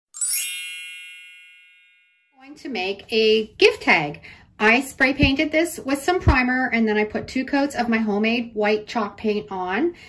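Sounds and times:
high ringing chime tones: 0.1s - 2.4s.

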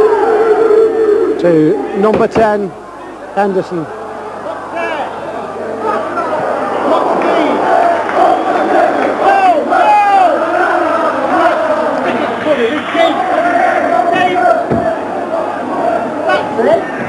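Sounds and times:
crowd shouting and chanting: 0.0s - 17.0s.

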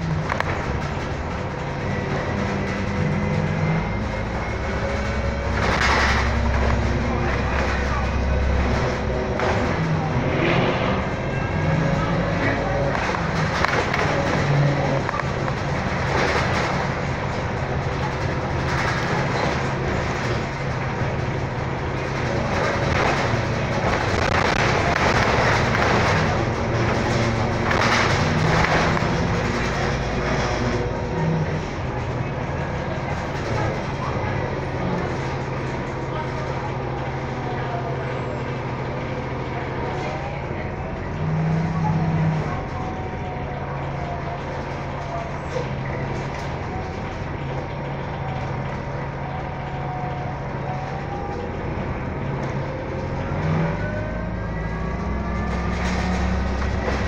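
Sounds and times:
bus drivetrain hum: 0.0s - 57.0s
road noise: 0.0s - 57.0s.

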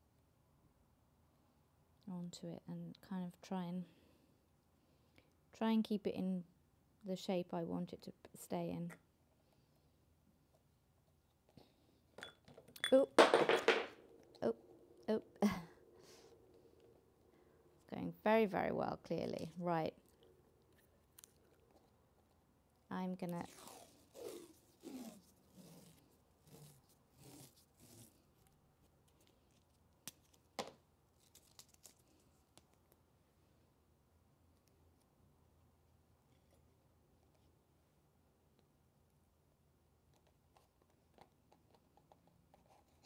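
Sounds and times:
adhesive tape pulled off roll: 23.3s - 30.4s.

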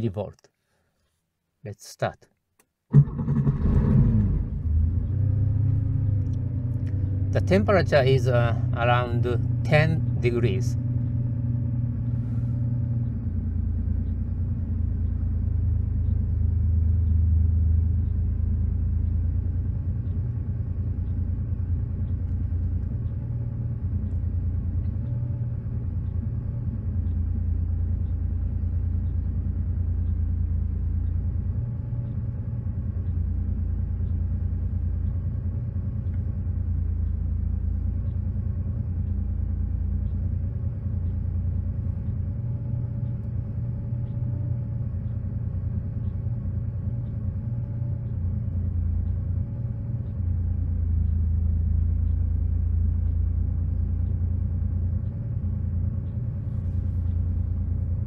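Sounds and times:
car engine idling: 2.9s - 58.0s.

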